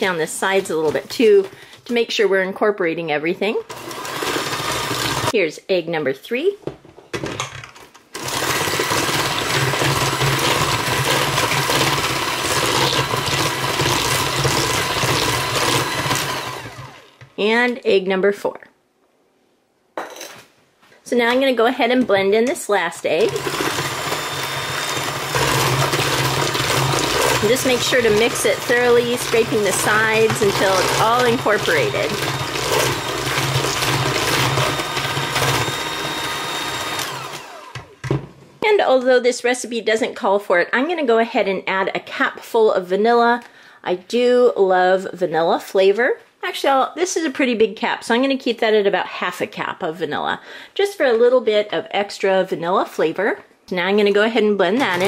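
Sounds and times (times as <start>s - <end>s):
electric hand mixer humming: 3.7s - 5.3s, 8.2s - 17.3s, 23.1s - 38.2s, 54.8s - 55.0s.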